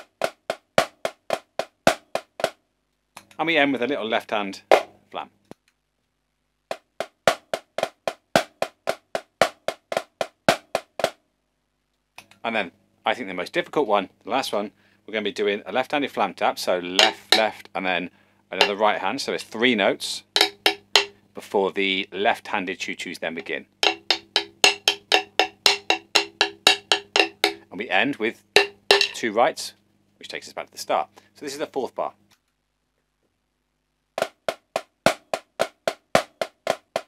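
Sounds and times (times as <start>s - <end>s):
marching snare drum strokes: 0.0s - 2.6s, 4.7s - 5.0s, 6.7s - 11.2s, 16.9s - 17.6s, 18.6s - 19.1s, 20.0s - 21.2s, 23.3s - 27.8s, 28.4s - 29.3s, 34.2s - 37.0s.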